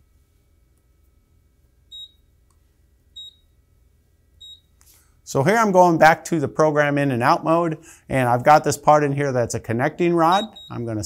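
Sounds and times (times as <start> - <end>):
short high beeps: 3.2 - 3.5, 4.4 - 4.7, 10.3 - 10.9.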